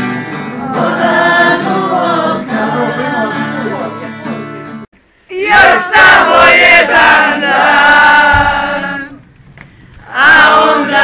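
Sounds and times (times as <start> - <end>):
group singing a long note: 0.3 - 4.3, 5.3 - 9.2, 10.0 - 11.0.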